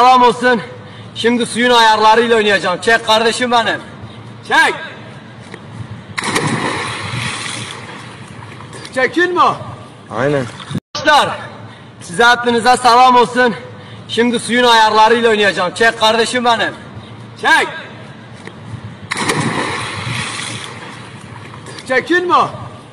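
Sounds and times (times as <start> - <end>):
splash of person diving into pool: 6.2 - 8.2, 19.1 - 21.1
churning water: 6.2 - 8.9.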